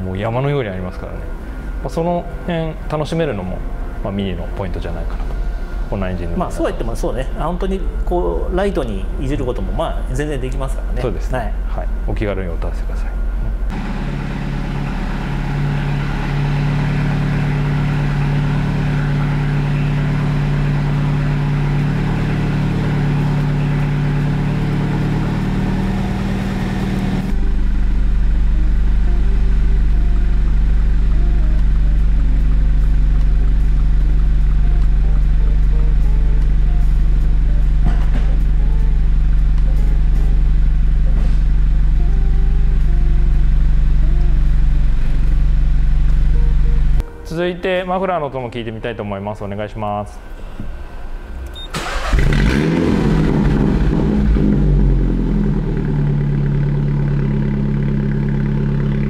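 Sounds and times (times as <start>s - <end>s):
car engine idling: 0.0s - 47.1s, 50.3s - 59.0s.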